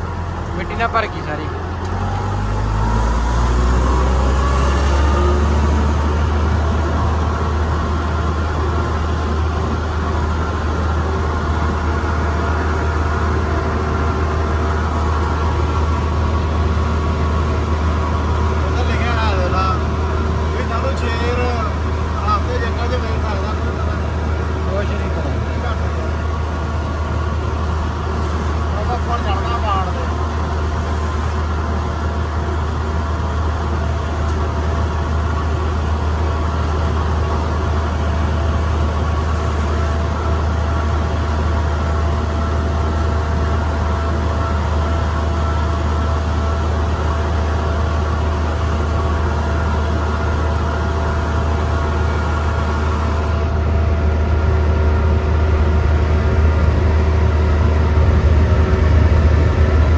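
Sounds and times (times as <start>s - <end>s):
diesel engine low drone: 0.0s - 59.9s.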